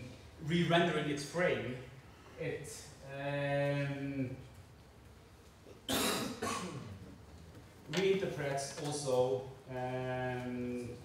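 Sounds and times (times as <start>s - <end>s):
man coughing: 5.9s - 7.0s.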